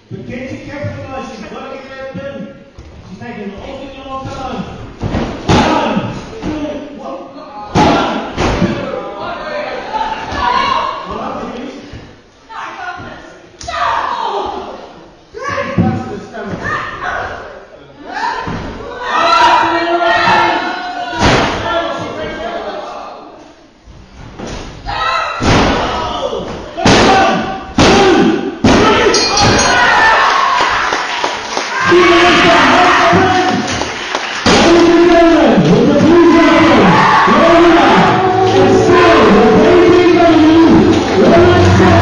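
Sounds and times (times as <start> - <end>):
crowd voices: 31.8 - 42.0.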